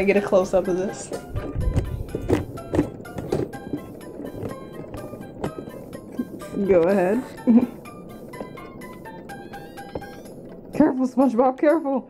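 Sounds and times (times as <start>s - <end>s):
bouncy background music: 0.0s - 12.0s.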